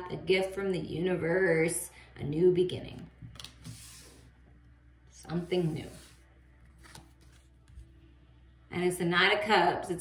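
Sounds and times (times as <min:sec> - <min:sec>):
card laid on wooden table: 0:03.2 - 0:04.3, 0:05.5 - 0:08.0.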